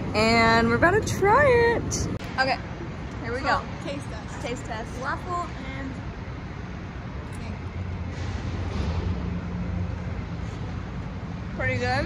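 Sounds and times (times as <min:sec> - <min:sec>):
city traffic rumble: 0:00.0 - 0:12.0
vehicle engine low hum: 0:00.0 - 0:12.0.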